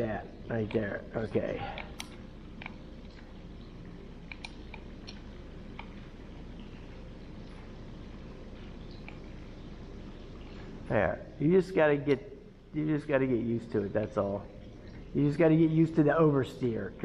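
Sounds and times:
low background hum: 0.0s - 17.0s.

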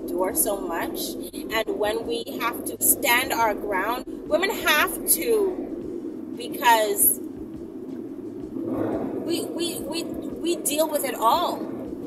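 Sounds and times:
car interior engine and road noise: 0.0s - 12.0s.

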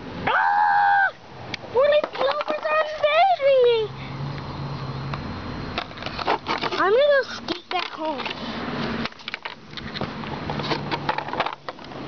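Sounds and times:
skateboard wheels rolling on concrete: 0.0s - 12.0s.

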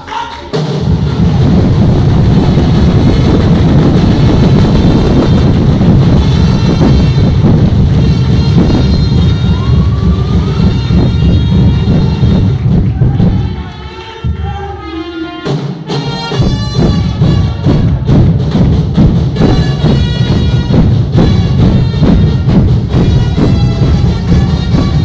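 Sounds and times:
loud drumming heavy bass drum: 0.0s - 13.6s, 15.4s - 25.0s.

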